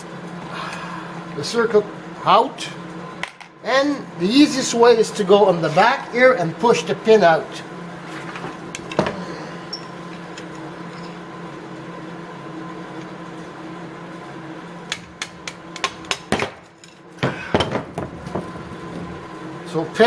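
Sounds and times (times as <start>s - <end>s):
steady hum: 0.0s - 20.0s.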